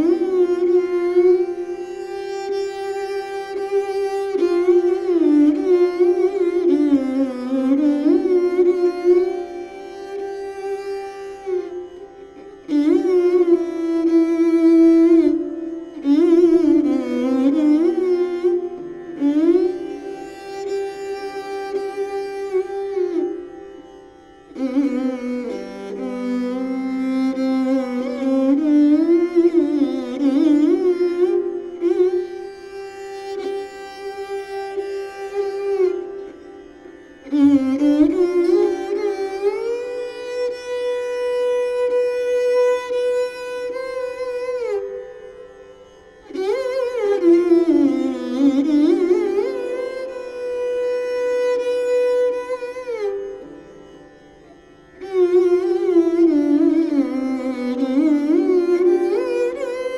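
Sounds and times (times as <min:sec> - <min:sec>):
bowed string instrument solo: 0:00.0 - 0:59.9.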